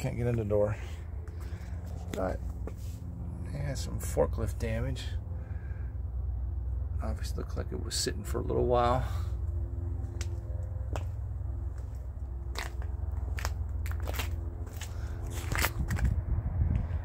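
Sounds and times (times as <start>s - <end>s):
faint steady drone: 0.0s - 15.3s
steady low rumble: 0.0s - 17.0s
footsteps crunching on gravel: 10.2s - 16.2s.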